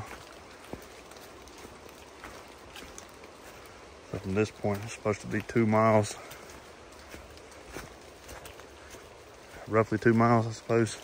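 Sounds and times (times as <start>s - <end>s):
distant creek water: 0.0s - 11.0s
footsteps on wet leaves: 0.0s - 11.0s
light rain: 0.0s - 11.0s.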